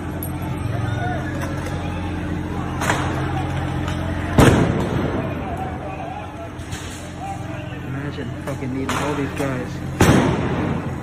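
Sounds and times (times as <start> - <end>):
crowd voices: 0.0 - 11.0
steady low hum: 0.0 - 11.0
grenade loud bang: 4.4 - 5.4, 10.0 - 11.0.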